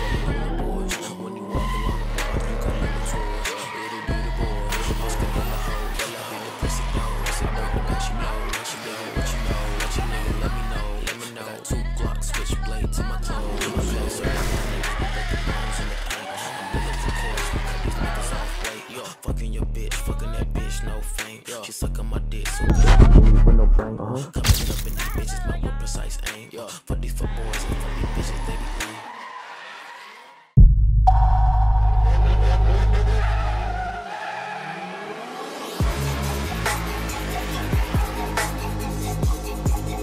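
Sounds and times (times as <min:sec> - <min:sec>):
tyres squealing: 0:00.0 - 0:19.2, 0:27.4 - 0:30.4
car engine revving: 0:00.0 - 0:21.0, 0:27.2 - 0:29.6, 0:31.1 - 0:40.0
hip-hop music with heavy bass: 0:00.0 - 0:30.2, 0:31.1 - 0:40.0
deep low rumble: 0:22.7 - 0:24.0, 0:30.6 - 0:33.7.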